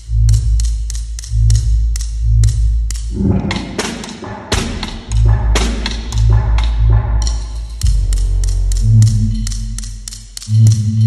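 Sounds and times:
electronic backing track bass pulses: 0.0s - 11.0s
snare drum strokes: 3.5s - 6.7s.

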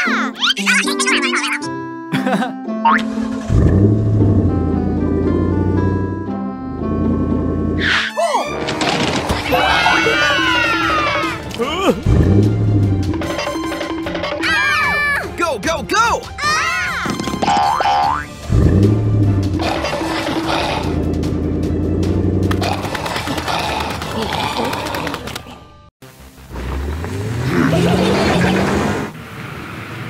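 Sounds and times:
cartoon music: 0.0s - 3.5s, 7.8s - 8.7s, 9.4s - 21.0s.

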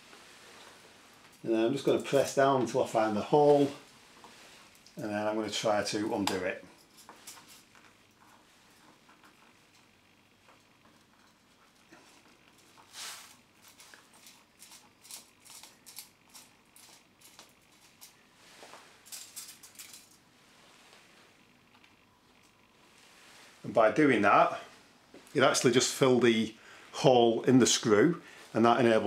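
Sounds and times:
aluminium foil crinkling: 6.4s - 20.2s.

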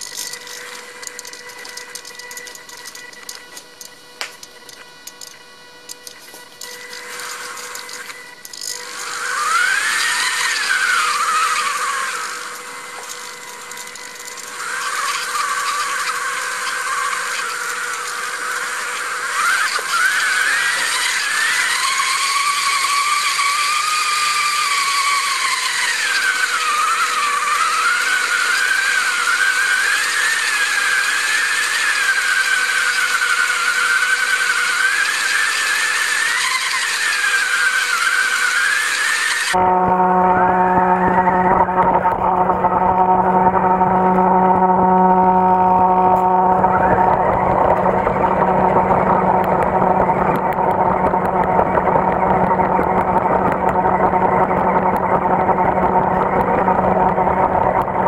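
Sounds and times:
toy car electric motors whining: 0.0s - 58.0s.

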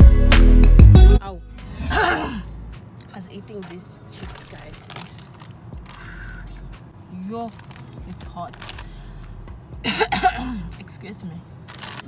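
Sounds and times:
loud music: 0.0s - 2.7s
woman sighing: 1.8s - 2.6s.

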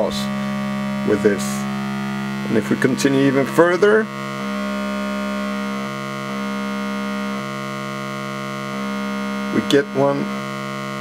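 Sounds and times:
buzzy synthesizer tone: 0.0s - 11.0s.

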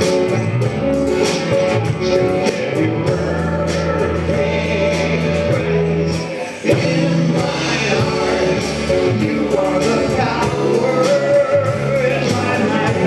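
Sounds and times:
drums: 0.0s - 13.0s
electric guitar: 0.0s - 13.0s
worship band playing: 0.0s - 13.0s
man and woman singing duet: 2.4s - 13.0s.

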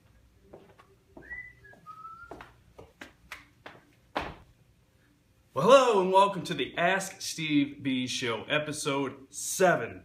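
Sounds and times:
person whistling: 1.2s - 2.6s
sharp footfalls: 4.1s - 4.5s.

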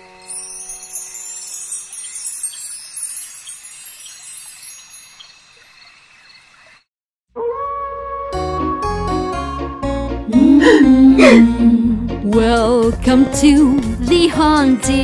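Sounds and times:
lullaby music: 0.0s - 5.2s, 8.3s - 15.0s
wind chimes tinkling: 0.0s - 6.3s.

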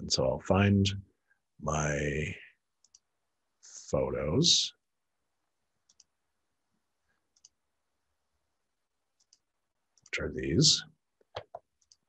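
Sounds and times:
faint computer mouse clicks: 2.8s - 3.1s, 5.9s - 6.1s, 7.3s - 7.6s.

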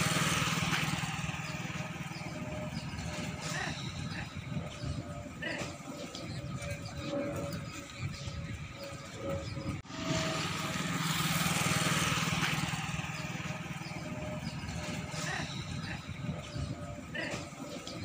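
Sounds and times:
vehicle passing close: 0.0s - 5.4s, 6.2s - 17.1s
highway traffic: 0.0s - 18.0s.

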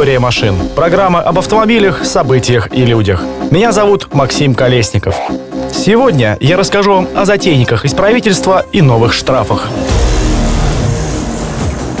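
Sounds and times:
music: 0.0s - 12.0s
loud hit: 9.8s - 12.0s.

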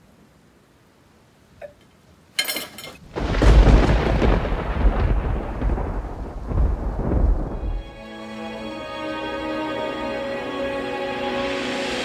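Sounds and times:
thunderclap and rumble: 3.0s - 8.0s.

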